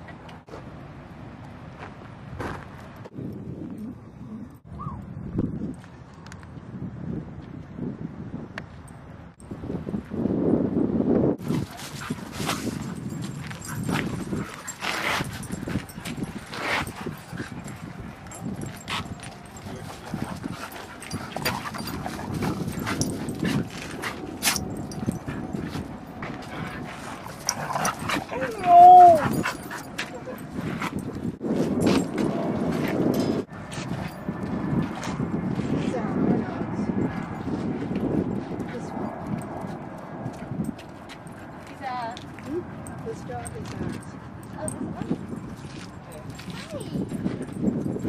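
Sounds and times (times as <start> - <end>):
dogs playing and scuffling: 11.4 - 48.0.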